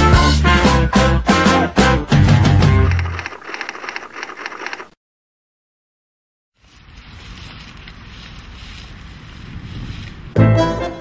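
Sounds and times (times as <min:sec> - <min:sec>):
rushing wind: 0:06.8 - 0:10.4.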